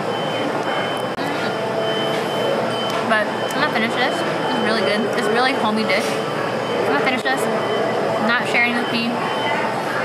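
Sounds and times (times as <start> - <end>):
high electronic beeps: 0.0 - 10.0.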